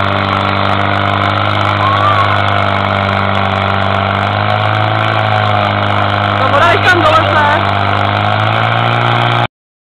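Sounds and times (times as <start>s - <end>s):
pump engine running at high revs: 0.0s - 9.5s.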